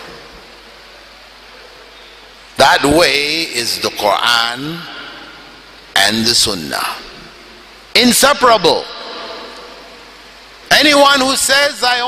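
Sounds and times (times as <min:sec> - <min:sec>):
background hiss: 0:00.0 - 0:12.0
faint low hum: 0:00.0 - 0:12.0.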